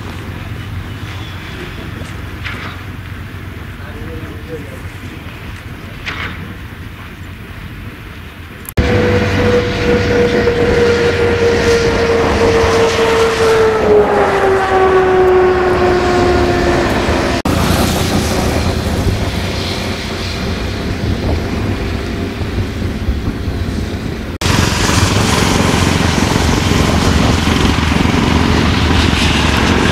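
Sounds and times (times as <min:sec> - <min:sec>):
loud rumbling noise: 0:08.7 - 0:29.9
motor tone: 0:08.8 - 0:17.4.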